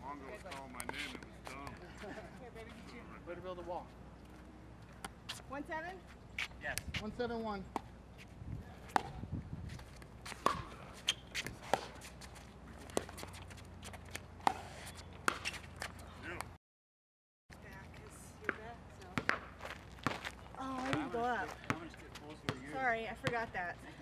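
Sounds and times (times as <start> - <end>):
ball bouncing on hard court: 8.9 - 9.2, 10.3 - 10.8, 18.4 - 23.5
footsteps: 17.6 - 22.4.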